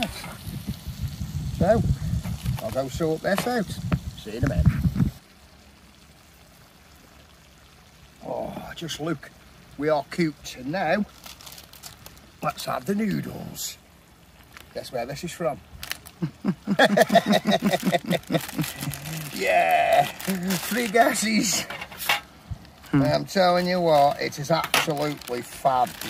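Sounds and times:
faint steady hiss: 0:00.0 - 0:26.0
man laughing: 0:16.2 - 0:20.6.

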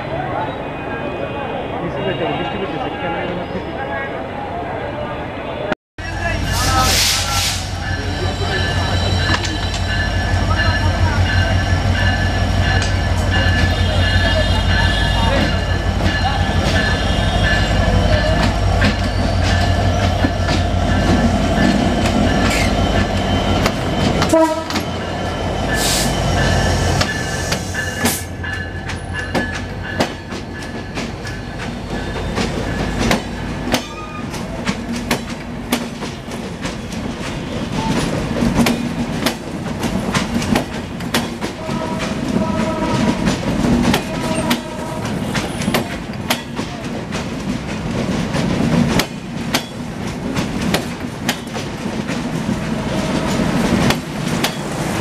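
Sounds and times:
train horn: 0:13.6 - 0:15.7, 0:16.4 - 0:17.8, 0:24.2 - 0:24.9, 0:41.6 - 0:45.6.

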